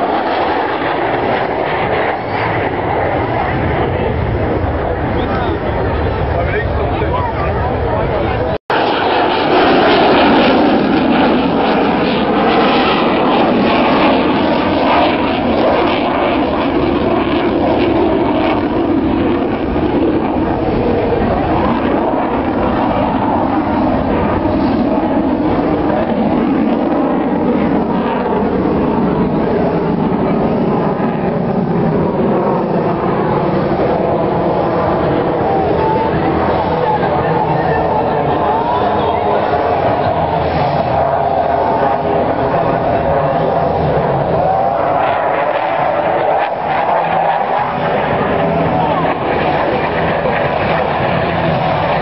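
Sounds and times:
jet engine noise: 0.0 - 52.0.

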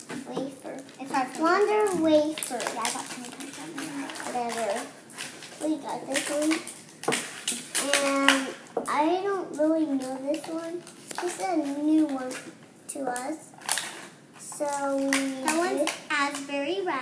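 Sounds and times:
plastic toys clicking: 1.1 - 8.6, 13.6 - 16.5.

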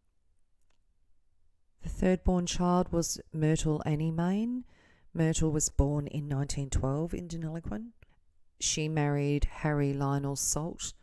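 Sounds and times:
woman speaking: 1.8 - 8.0, 8.6 - 11.0.

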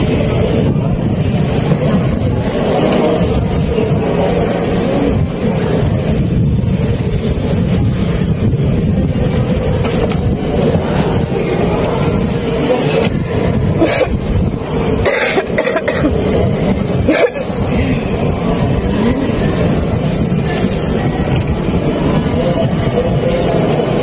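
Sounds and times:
loud low rumble: 0.0 - 24.0.

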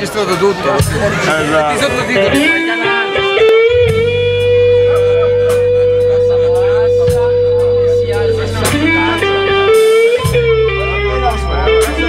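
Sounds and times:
electric guitar bent notes: 0.2 - 12.0
held low notes: 0.8 - 12.0.

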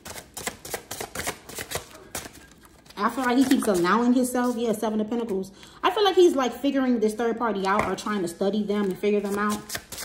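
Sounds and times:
cards being shuffled: 0.0 - 4.6, 8.8 - 10.0.

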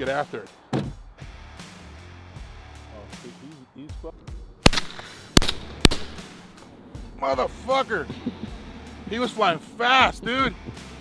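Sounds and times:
shotgun shots: 4.6 - 6.5.

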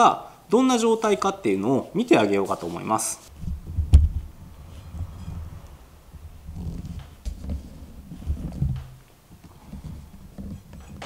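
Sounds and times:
handling noise: 2.5 - 11.0
soft wooden knocks: 3.4 - 11.0.

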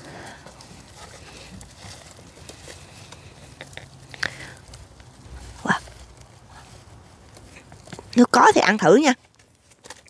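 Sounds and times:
hands digging in damp soil: 0.0 - 10.0
leaves rustling: 0.0 - 10.0
small crackles: 0.0 - 10.0.

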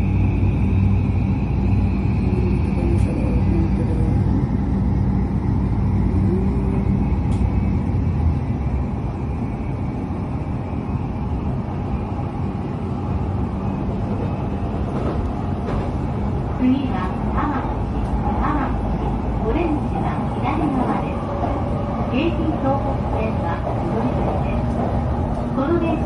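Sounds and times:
train wheels rumbling: 0.0 - 26.0.

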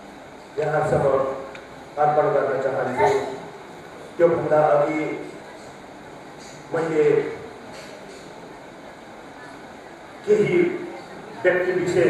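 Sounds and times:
room tone and microphone hiss: 0.0 - 12.0.

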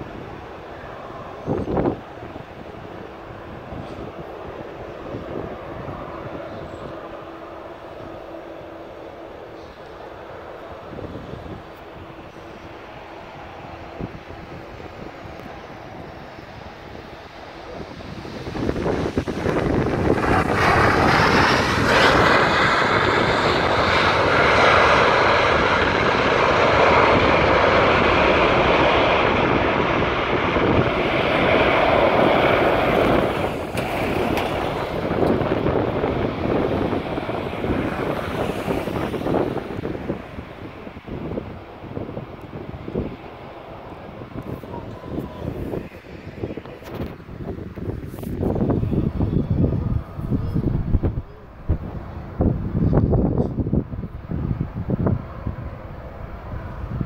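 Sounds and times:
jet engine whine: 0.0 - 57.0
jet engines roaring: 0.0 - 57.0.

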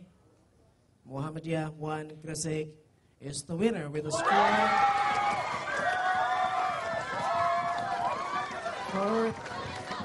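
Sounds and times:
students cheering and shouting: 4.1 - 10.0.

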